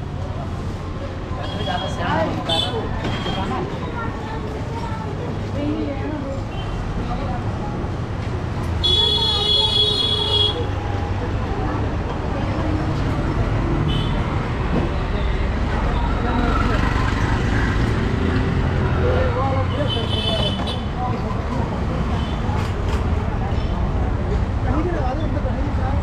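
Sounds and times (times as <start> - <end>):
passers-by talking: 0.0 - 26.0
street traffic noise: 0.0 - 26.0
vehicle horns honking: 8.8 - 10.7.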